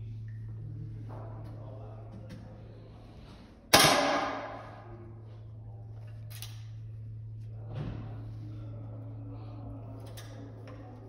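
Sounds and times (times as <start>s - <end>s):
rifle shot: 3.7s - 4.6s.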